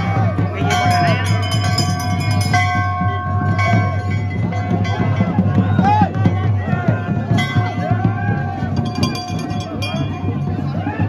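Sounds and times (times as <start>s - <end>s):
large brass bells ringing: 0.0s - 5.8s, 7.1s - 11.0s.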